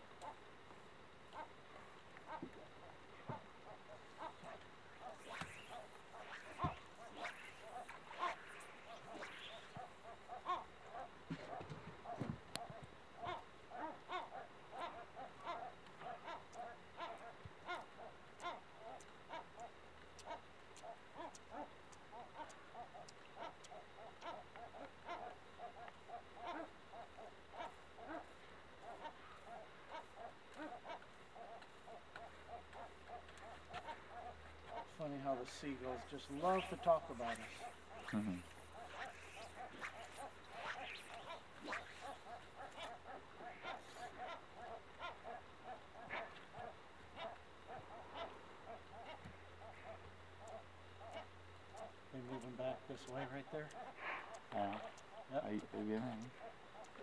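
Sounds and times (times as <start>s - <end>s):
seagulls calling: 2.3s - 55.4s.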